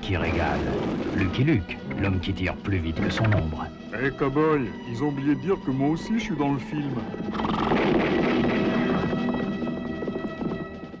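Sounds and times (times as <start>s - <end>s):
trailer music: 0.0s - 11.0s
clip-clop hoofbeat rhythm: 7.0s - 11.0s.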